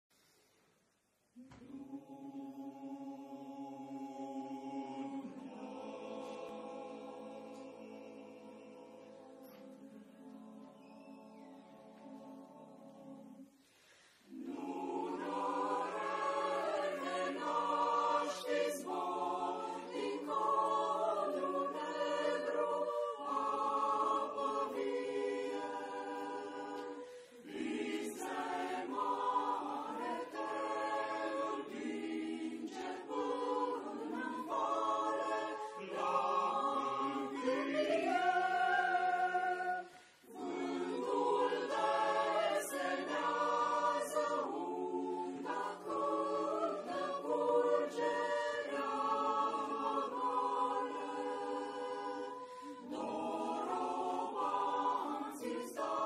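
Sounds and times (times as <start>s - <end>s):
mixed choir singing a cappella: 1.4s - 56.0s.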